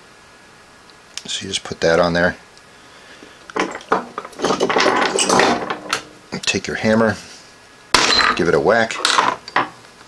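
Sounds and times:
metal tools clinking: 3.6 - 6.1, 8.0 - 9.7.

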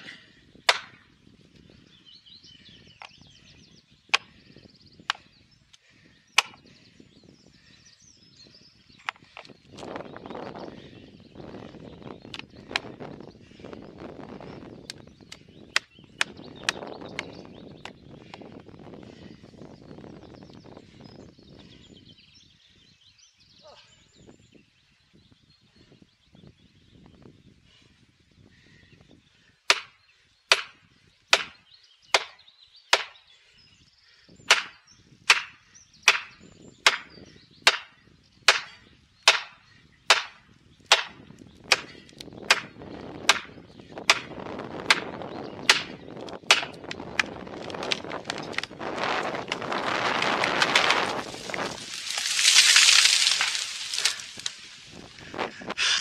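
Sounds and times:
rush of falling tree: 47.6 - 55.3.

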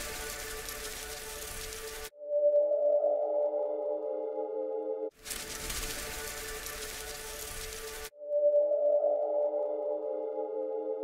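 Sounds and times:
steady hiss: 0.0 - 2.1, 5.2 - 8.1.

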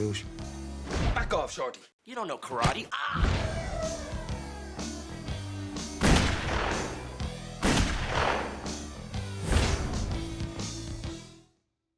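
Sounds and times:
low steady trailer music: 3.2 - 11.5
loud gunshot with echo: 6.0 - 7.0, 7.6 - 8.6.

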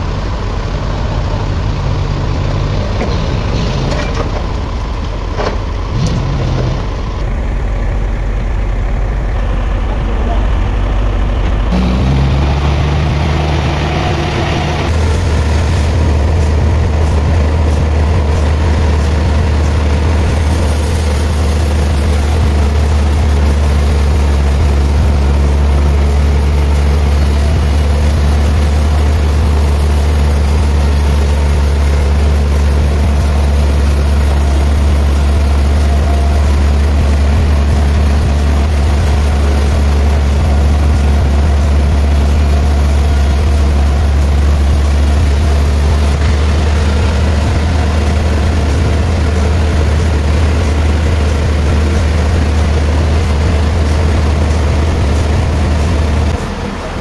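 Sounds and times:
loud low machinery hum: 0.0 - 57.0
band saw cutting log: 11.7 - 56.7.

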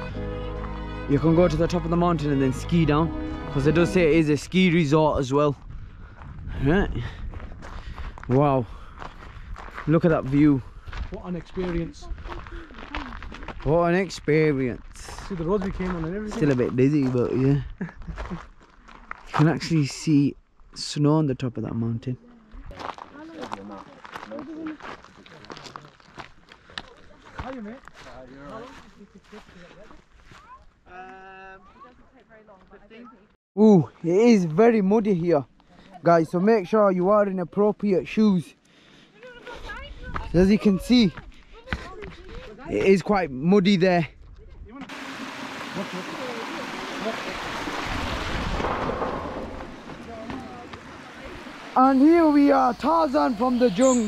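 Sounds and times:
footsteps on gravel: 7.2 - 19.6, 22.4 - 30.8, 39.2 - 43.1, 48.2 - 54.0
stream rushing over rocks: 44.9 - 53.3.

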